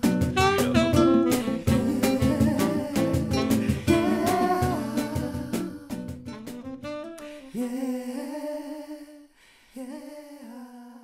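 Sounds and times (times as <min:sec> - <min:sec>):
voice holding long notes: 0:00.4 - 0:06.0.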